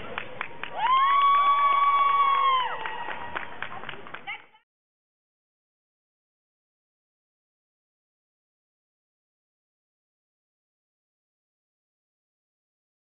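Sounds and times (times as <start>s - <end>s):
crowd clapping and cheering: 0.0s - 4.6s
high held whoop: 0.7s - 3.3s.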